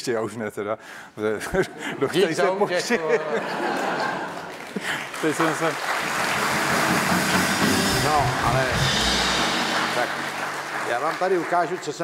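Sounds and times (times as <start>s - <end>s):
drum kit: 6.4s - 11.2s
house band playing: 6.6s - 11.0s.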